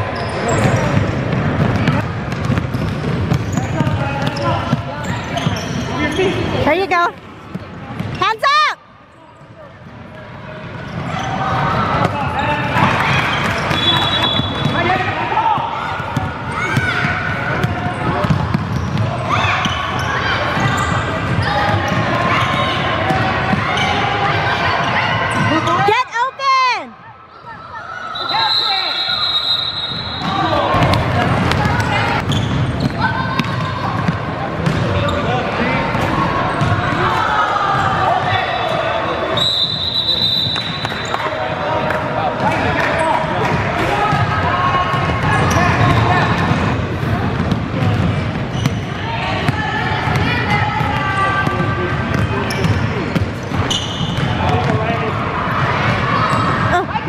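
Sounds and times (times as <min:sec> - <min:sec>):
voices echoing in hall: 0:00.0 - 0:57.0
basketball bouncing on hardwood floor: 0:17.6 - 0:19.0.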